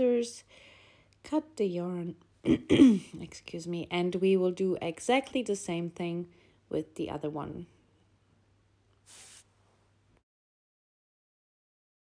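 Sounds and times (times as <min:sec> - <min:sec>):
short soft hiss: 0:09.0 - 0:09.7.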